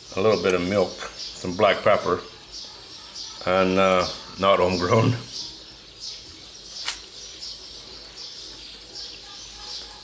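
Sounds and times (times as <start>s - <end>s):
birds chirping faintly: 0.0s - 10.0s
sharp click: 6.8s - 7.1s.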